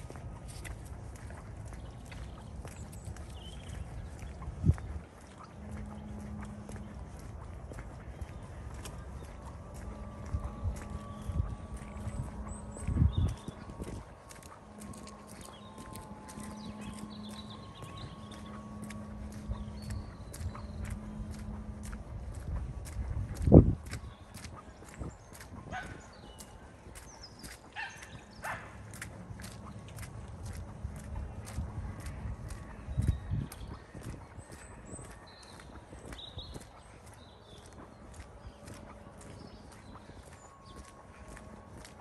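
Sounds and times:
footsteps on frosty path: 0.0 - 42.0.

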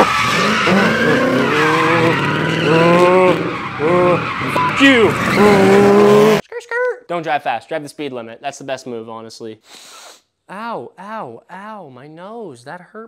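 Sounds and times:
car engine revving high: 0.0 - 6.4
people shouting: 0.0 - 6.4
tyres screeching: 0.0 - 6.4.

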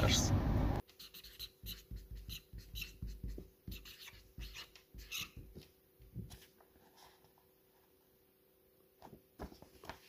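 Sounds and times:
felt marker writing on paper: 0.9 - 5.5.

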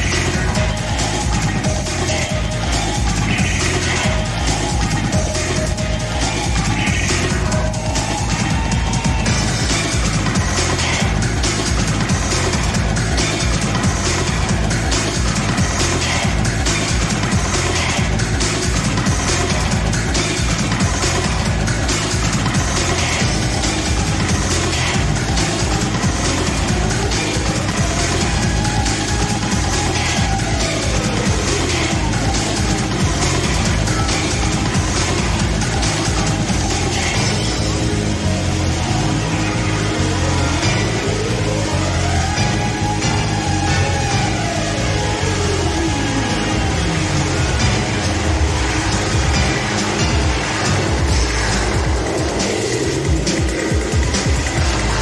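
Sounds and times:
breakbeat dance music: 0.0 - 55.0.

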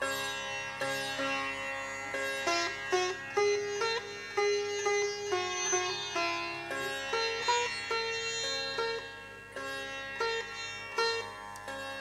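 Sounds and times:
sitar plucked notes: 0.0 - 12.0
tanpura drone: 0.0 - 12.0.

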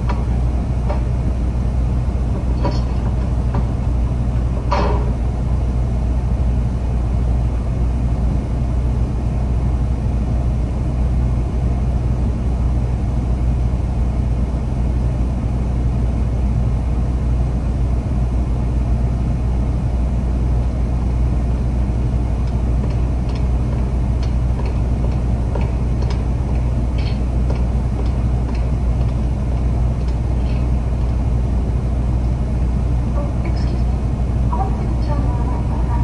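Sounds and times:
low engine rumble: 0.0 - 36.0.

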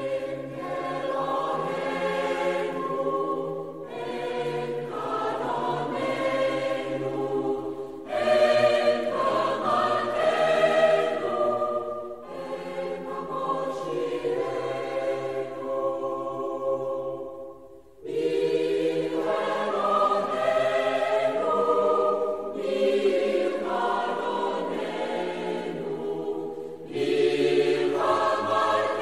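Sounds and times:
choir singing sustained chords: 0.0 - 29.0.

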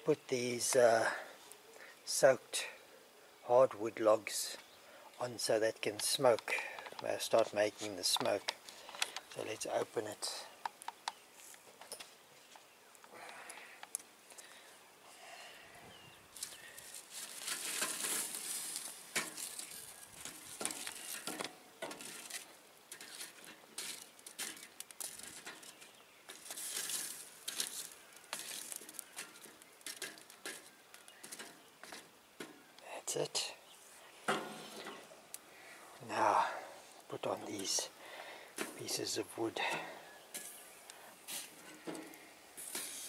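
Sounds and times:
tongs scraping charcoal on grate: 16.4 - 32.8, 38.6 - 43.0.

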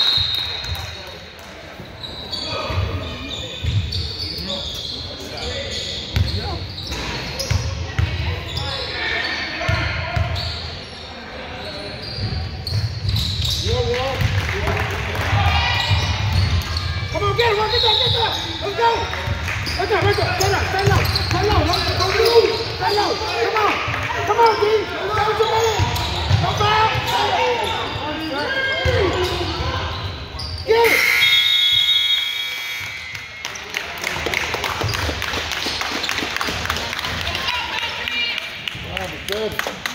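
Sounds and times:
scoreboard horn: 30.8 - 32.9.

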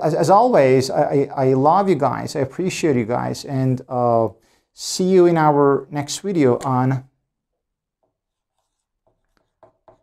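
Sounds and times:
marker writing on whiteboard: 7.5 - 10.0.

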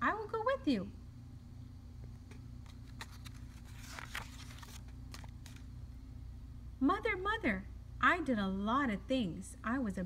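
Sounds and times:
steady low hum: 0.0 - 10.0
paper page rustling: 2.3 - 5.7.

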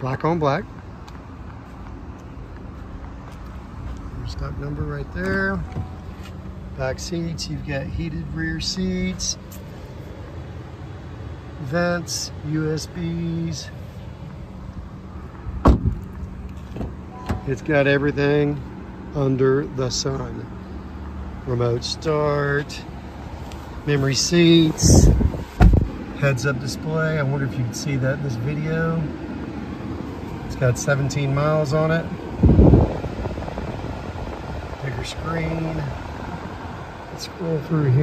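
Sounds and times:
car climate fan air rush: 0.0 - 38.0
car door shutting thump: 15.6 - 16.1, 25.4 - 25.9.

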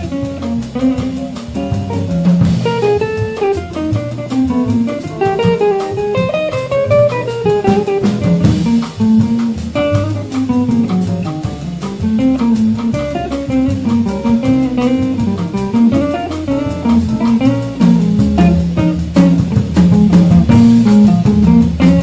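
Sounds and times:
bass: 0.0 - 22.0
drums: 0.0 - 22.0
jazz guitar melody: 0.0 - 22.0.

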